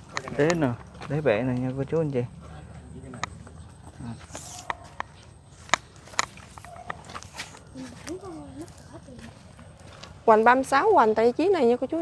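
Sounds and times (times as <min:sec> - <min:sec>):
handling clicks and taps: 0:04.6 - 0:07.0.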